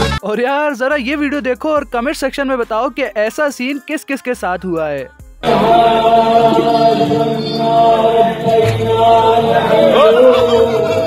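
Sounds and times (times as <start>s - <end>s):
voices singing a held chant: 5.4s - 11.0s.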